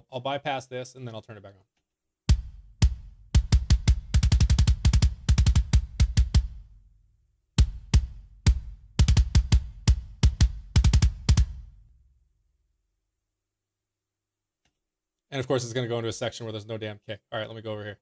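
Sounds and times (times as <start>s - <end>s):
kick drum hits and double-kick runs: 2.3s - 6.7s, 7.6s - 11.8s.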